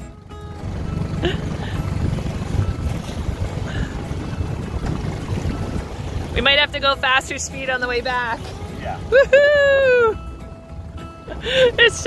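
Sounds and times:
outboard motor rumble: 0.0s - 12.0s
rushing water: 0.6s - 12.0s
wind on microphone: 0.7s - 6.6s.

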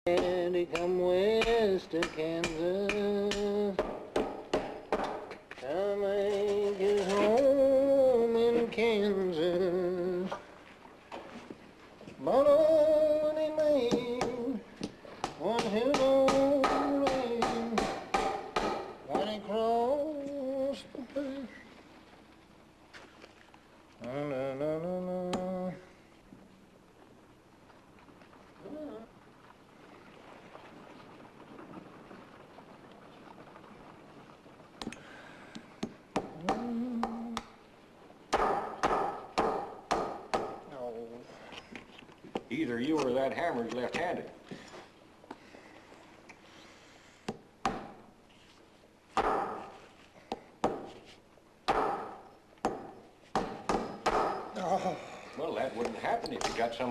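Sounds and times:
man singing held notes: 0.0s - 3.8s, 5.6s - 10.4s, 12.2s - 14.7s, 15.4s - 17.9s, 24.0s - 25.9s, 36.4s - 37.5s
hammer knocking nails: 0.1s - 5.4s, 13.9s - 19.4s, 36.1s - 37.5s, 38.3s - 40.7s, 47.3s - 48.0s, 51.7s - 54.5s
man humming: 15.4s - 17.9s, 19.2s - 21.7s, 24.0s - 25.9s, 36.3s - 37.5s.

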